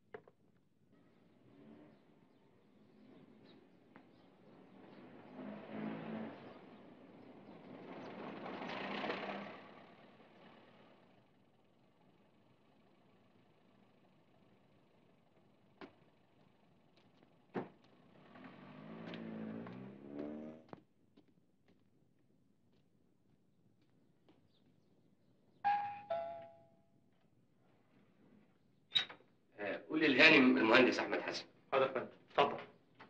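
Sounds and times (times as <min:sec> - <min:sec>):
car driving up and stopping: 0:01.1 - 0:20.8.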